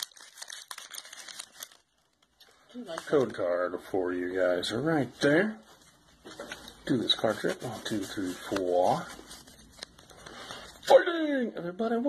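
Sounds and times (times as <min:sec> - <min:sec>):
cards rustling and shuffling: 0:00.0 - 0:03.4, 0:05.8 - 0:11.0.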